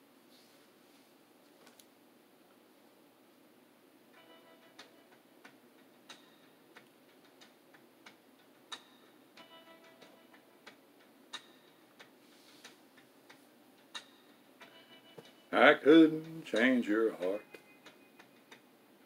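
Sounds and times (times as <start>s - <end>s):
faint steady ticking: 4.1s - 19.0s.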